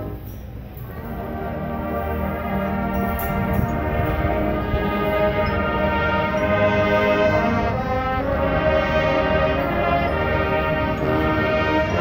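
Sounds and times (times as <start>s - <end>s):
marching band brass chords: 0.0s - 12.0s.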